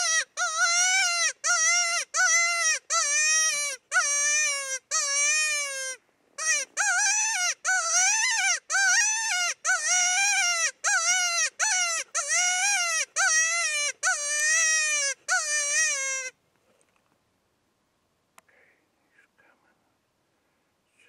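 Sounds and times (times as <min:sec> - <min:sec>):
predator call distress cry: 0:00.0 - 0:16.4.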